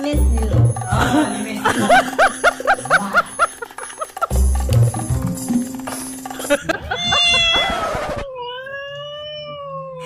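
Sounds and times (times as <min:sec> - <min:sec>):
cat meowing: 0:07.0 - 0:10.0.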